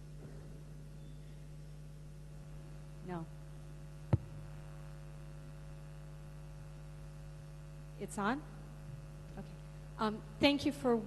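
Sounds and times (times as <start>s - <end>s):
mains hum on speakers: 0.0s - 11.0s
microphone handling thump: 4.1s - 4.6s.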